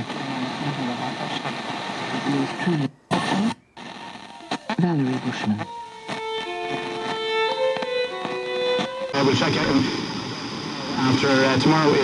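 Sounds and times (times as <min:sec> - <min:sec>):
radio presenter's voice: 0:00.0 - 0:06.2, 0:09.1 - 0:12.0
radio hiss: 0:00.0 - 0:12.0.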